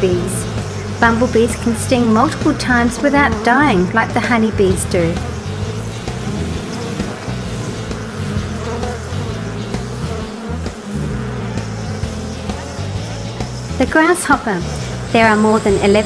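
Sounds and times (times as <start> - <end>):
background music: 0.0 - 16.0
bumblebee buzzing: 0.0 - 16.0.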